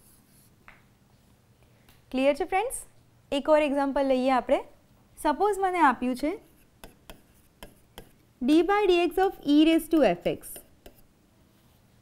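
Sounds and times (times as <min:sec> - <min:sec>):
stylus scratching on screen: 0:06.2 - 0:08.2, 0:09.2 - 0:11.1.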